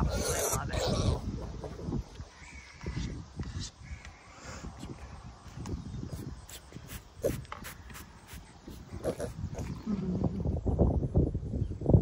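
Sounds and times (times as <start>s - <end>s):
farm animal calls: 6.9s - 10.0s.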